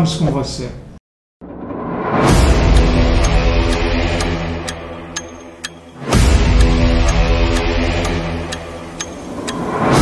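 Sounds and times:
background music: 0:01.4 - 0:10.0
clock ticking: 0:02.3 - 0:10.0.

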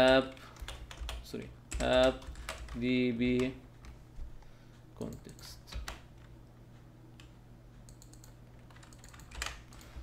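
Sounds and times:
computer keyboard typing: 0:00.0 - 0:04.0, 0:05.0 - 0:06.3, 0:07.9 - 0:10.0.

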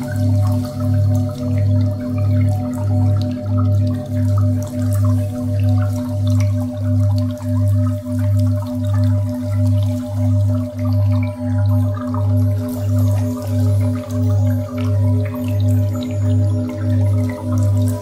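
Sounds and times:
deep pulsing drone: 0:00.0 - 0:18.0
steady meditation tone: 0:00.0 - 0:18.0
water dripping: 0:00.0 - 0:18.0.

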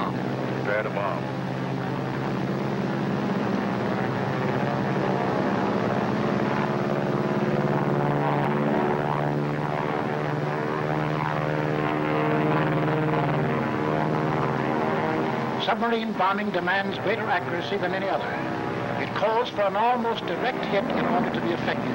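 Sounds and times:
propeller plane engines droning: 0:00.0 - 0:21.9.

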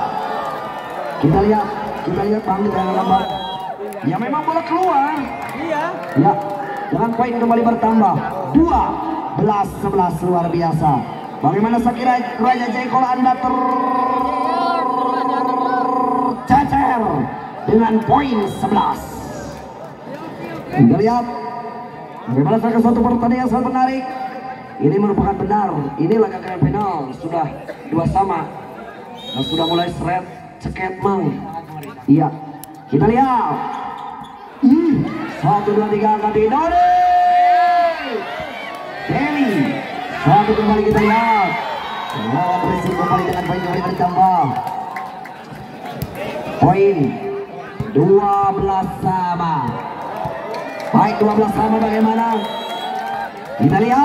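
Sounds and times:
crowd cheering and whooping: 0:00.0 - 0:03.9, 0:37.2 - 0:45.6, 0:49.8 - 0:53.8.

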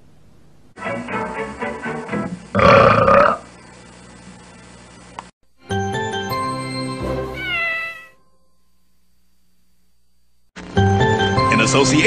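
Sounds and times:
gruff burp-like vocal sound: 0:02.6 - 0:03.5.

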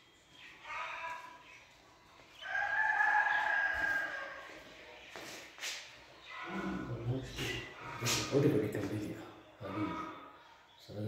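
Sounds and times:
rooster crowing: 0:02.4 - 0:04.7.

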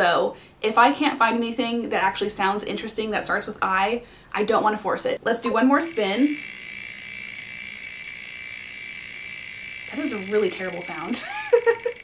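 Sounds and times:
high-pitched electronic tone: 0:05.8 - 0:12.0.

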